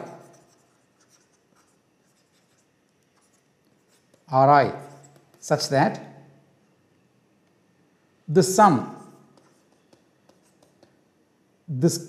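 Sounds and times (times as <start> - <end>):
stylus scratching on tablet: 0.0 - 5.8, 8.7 - 11.2.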